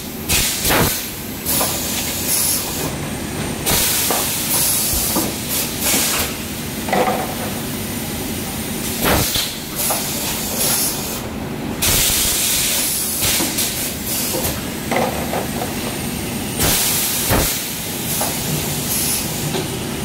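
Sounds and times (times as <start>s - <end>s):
pneumatic cylinder clunks: 0.3s - 3.0s, 3.6s - 7.6s, 9.0s - 11.2s, 11.8s - 16.0s, 16.6s - 19.8s
compressed air hissing: 3.7s - 6.5s, 8.9s - 14.5s, 16.6s - 19.5s.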